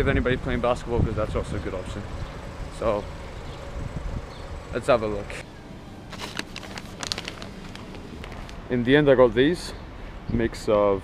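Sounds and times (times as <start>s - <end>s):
plastic snack bag crinkling: 6.1s - 8.6s.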